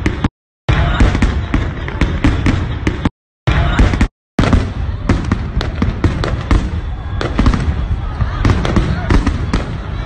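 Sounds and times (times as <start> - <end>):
fireworks bursting and crackling: 0.0 - 10.0.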